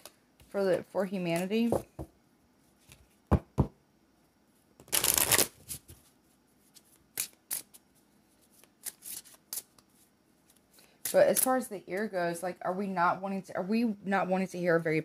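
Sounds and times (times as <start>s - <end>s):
cards snapping: 4.8s - 5.6s, 7.1s - 7.8s
cards shuffling: 4.8s - 11.6s.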